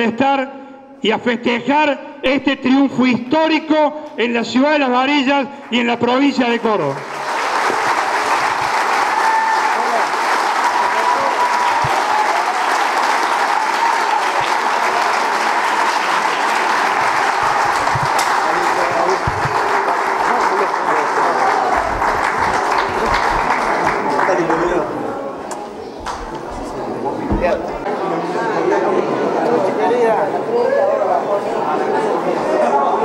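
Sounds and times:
crowd applauding: 0:05.7 - 0:25.1.

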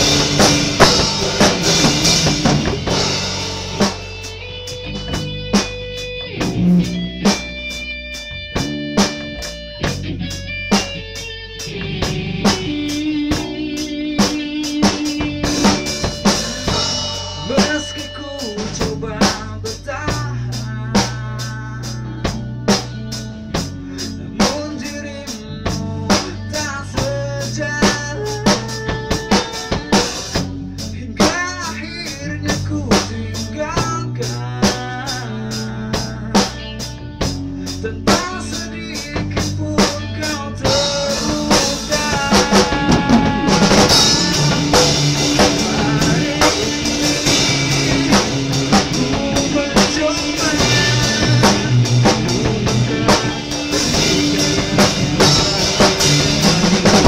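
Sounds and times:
drum kit beat: 0:00.0 - 0:57.0
electric bass: 0:00.0 - 0:57.0
electric guitar bent notes: 0:00.0 - 0:57.0.

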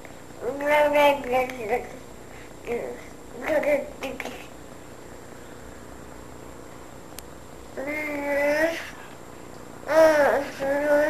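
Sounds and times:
room hum: 0:00.0 - 0:11.0
small click: 0:07.1 - 0:07.3
toddler long vocal sound: 0:09.9 - 0:11.0.

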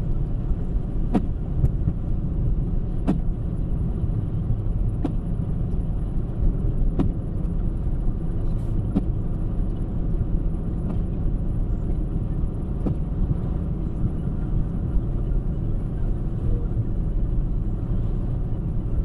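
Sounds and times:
tyre and road noise: 0:00.0 - 0:19.0.

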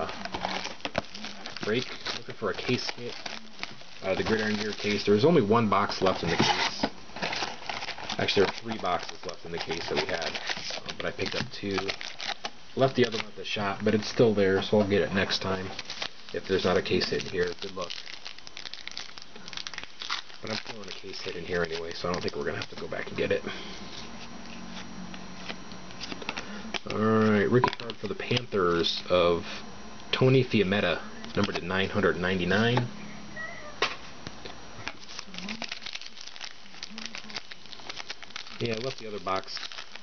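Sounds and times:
foil wrapper crinkling: 0:00.0 - 0:28.9, 0:30.7 - 0:32.8, 0:34.8 - 0:40.0.

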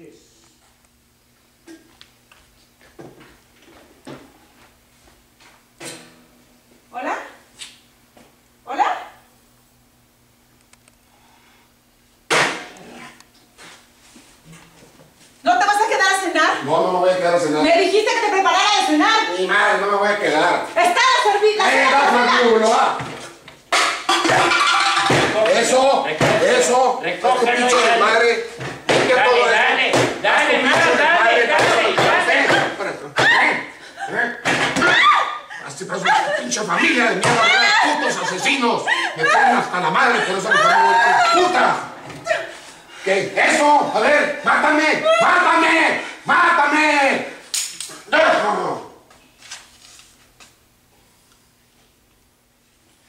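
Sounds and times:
person shouting: 0:29.1 - 0:33.8, 0:34.8 - 0:36.5, 0:37.2 - 0:42.5, 0:44.8 - 0:47.3.

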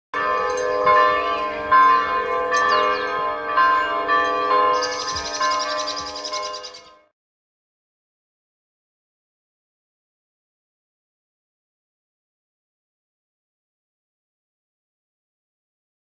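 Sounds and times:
bells ringing: 0:00.2 - 0:07.1
high chirps: 0:04.8 - 0:07.0.

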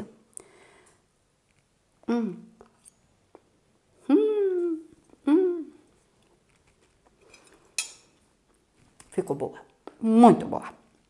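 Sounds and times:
fork clinking on plate: 0:07.2 - 0:08.2.

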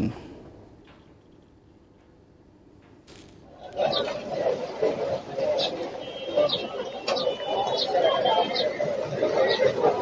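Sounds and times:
background chatter: 0:03.4 - 0:10.0.

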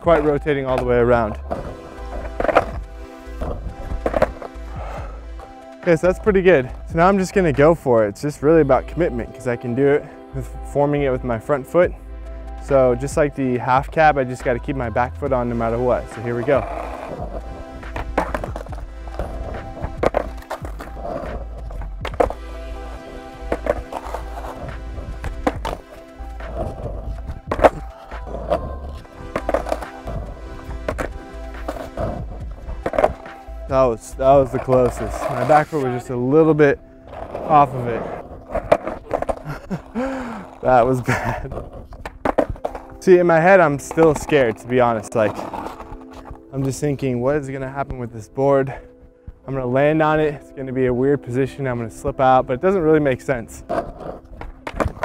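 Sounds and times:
background music: 0:00.0 - 0:55.0
skateboard clacking on asphalt: 0:00.1 - 0:07.1, 0:15.5 - 0:33.7, 0:36.6 - 0:46.8, 0:53.0 - 0:55.0.

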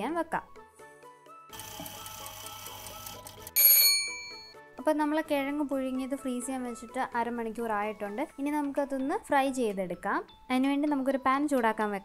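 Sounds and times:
soft background music: 0:00.0 - 0:12.0
alarm bell ringing: 0:03.6 - 0:04.6.

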